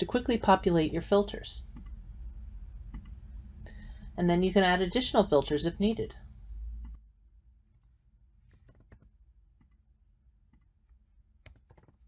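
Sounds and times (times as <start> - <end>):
computer mouse clicks: 1.7 - 2.0, 2.9 - 3.2, 10.5 - 12.0.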